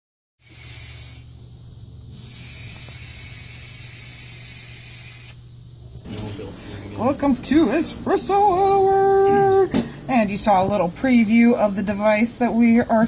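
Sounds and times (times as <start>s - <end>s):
vape hissing when puffed: 0.4s - 5.6s.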